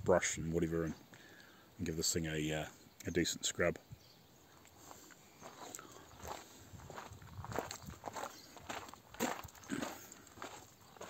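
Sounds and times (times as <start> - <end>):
footsteps on gravel: 4.8 - 11.0.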